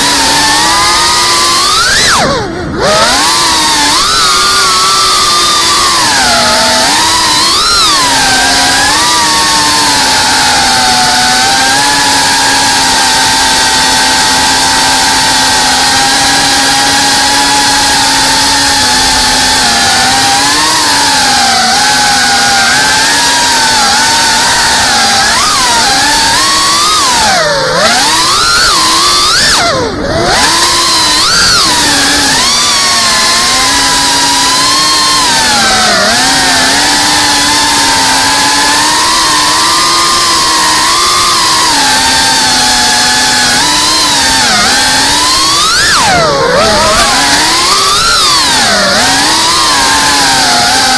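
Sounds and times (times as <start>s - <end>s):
quadcopter motors whining: 0.0s - 50.9s.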